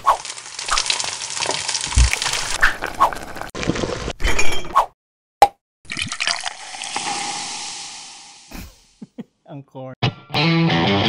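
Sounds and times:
food sizzling in a wok: 0:00.1 - 0:01.9
liquid pouring into a glass: 0:05.9 - 0:08.1.

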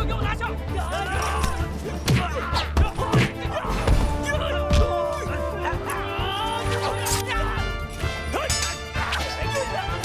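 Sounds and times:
dramatic orchestral music: 0:00.0 - 0:10.0
men crying out: 0:00.7 - 0:07.8.

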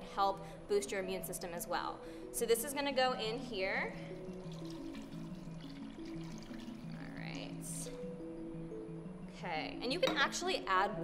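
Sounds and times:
background music: 0:00.0 - 0:11.0
broth pouring into a pot: 0:04.1 - 0:07.4.

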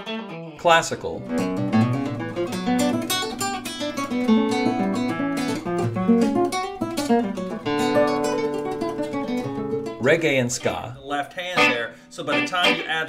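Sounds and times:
fingerstyle acoustic guitar: 0:00.0 - 0:10.8.

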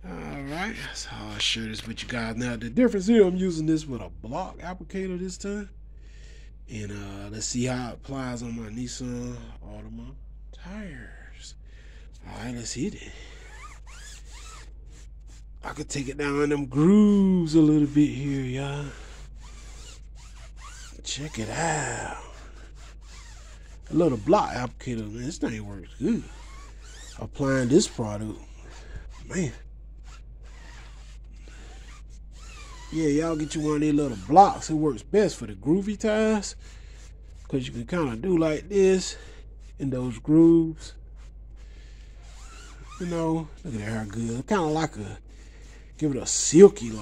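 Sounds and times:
steady low hum: 0:00.0 - 0:47.0
applicator rubbing on tire: 0:13.1 - 0:35.4, 0:41.1 - 0:47.0.

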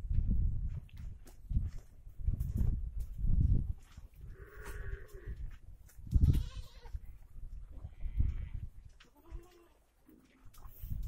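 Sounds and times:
goats bleating: 0:06.2 - 0:07.0.

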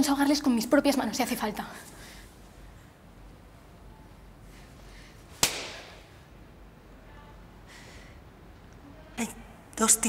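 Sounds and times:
slap to the face: 0:05.4 - 0:06.0.

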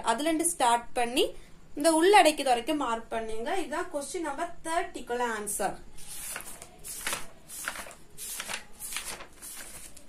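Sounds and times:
paper pages flipping: 0:06.0 - 0:10.0.

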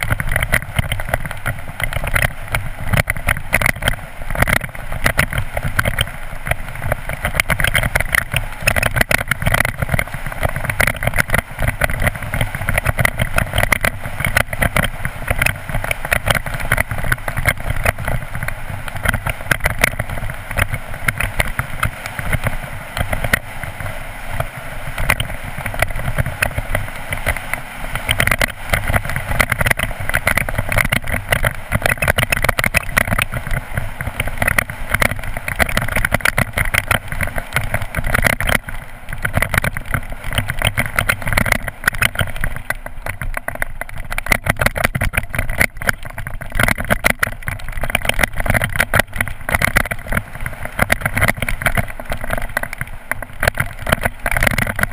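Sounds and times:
bike rattling and clattering: 0:00.0 - 0:54.9
tyres rumbling over stones: 0:24.4 - 0:54.9.

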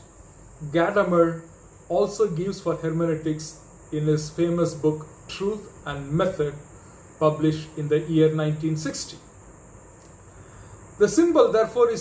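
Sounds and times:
low room hiss: 0:00.0 - 0:12.0.

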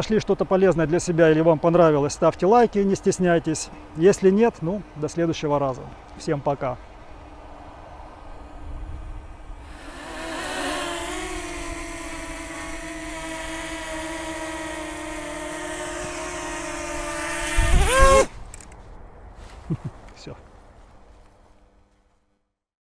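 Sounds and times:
drone propellers whining: 0:07.4 - 0:18.7.

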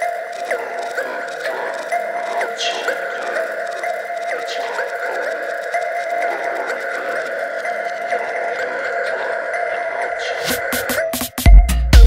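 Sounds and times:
held synthesizer tones: 0:00.0 - 0:11.3.

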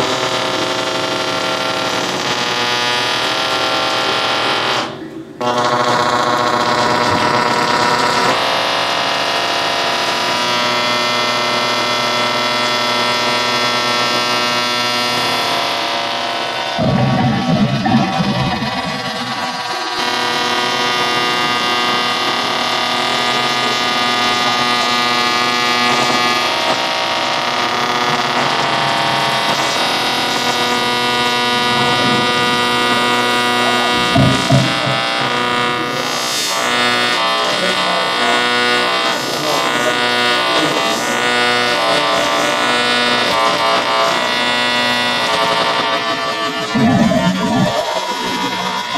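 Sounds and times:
drill on electric strings drone: 0:00.0 - 0:48.9
rough low grinding: 0:46.5 - 0:48.9.

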